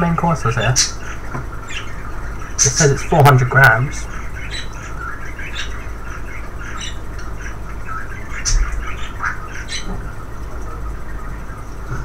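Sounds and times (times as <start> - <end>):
bird chirping: 0.0 - 12.0
steady low hum: 0.0 - 12.0.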